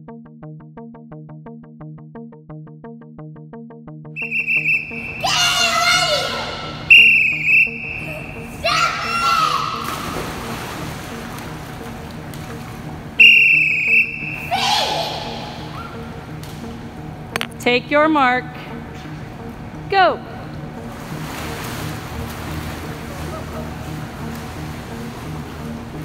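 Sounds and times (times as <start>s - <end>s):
whistle blasts: 4.2s - 9.5s, 13.2s - 16.1s
water splashing: 4.2s - 17.5s, 20.6s - 26.0s
children's voices: 5.0s - 6.9s, 8.0s - 10.1s, 14.4s - 16.0s.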